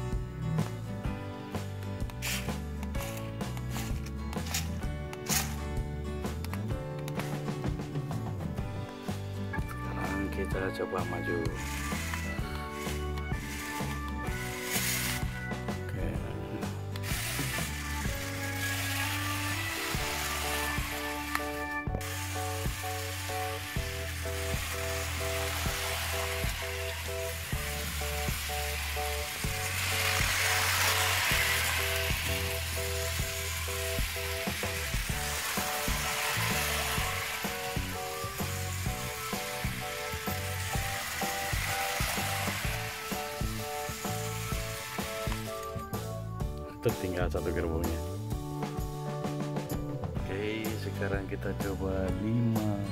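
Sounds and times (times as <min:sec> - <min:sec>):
background music with bass line: 0:00.0 - 0:52.9.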